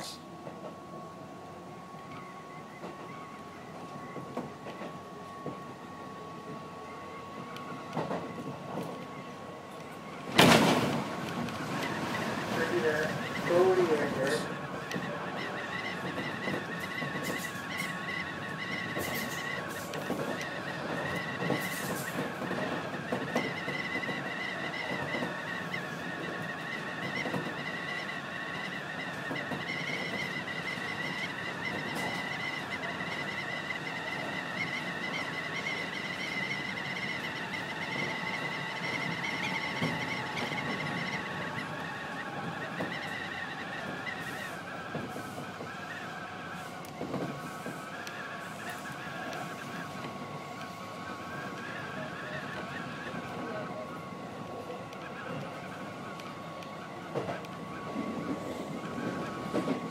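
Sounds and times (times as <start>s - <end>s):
train drive whine: 0.0s - 59.9s
train wheels rumbling on rails: 0.0s - 59.9s.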